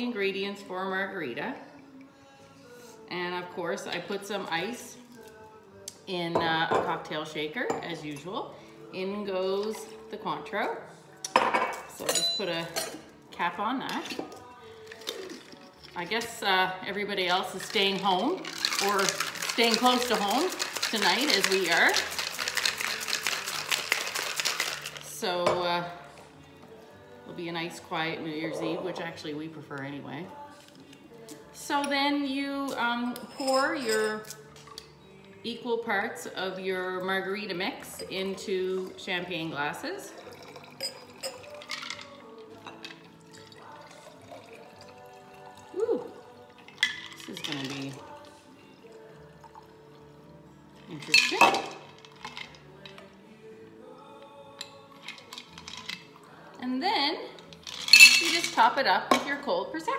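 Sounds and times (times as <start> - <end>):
ice rattling in cocktail shaker: 14.0 - 25.6, 33.3 - 34.8, 39.9 - 48.3, 50.8 - 53.0, 54.6 - 56.6, 57.3 - 59.2
liquid pouring into a glass: 17.5 - 25.1, 40.1 - 50.2.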